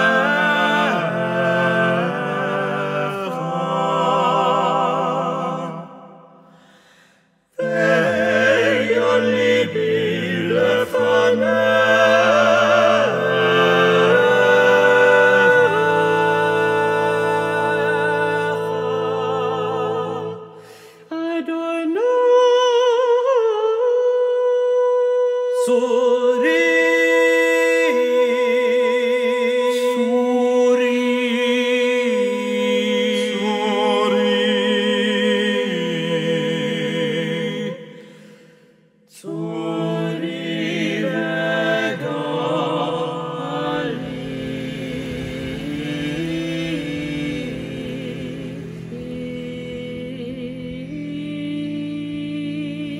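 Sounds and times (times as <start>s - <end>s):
choir singing sustained chords: 0.0s - 22.3s, 25.4s - 52.9s.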